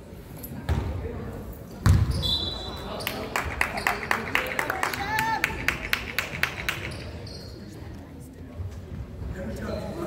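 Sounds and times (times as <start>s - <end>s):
murmur of spectators: 0.0s - 10.0s
basketball bouncing on hardwood: 1.8s - 2.1s.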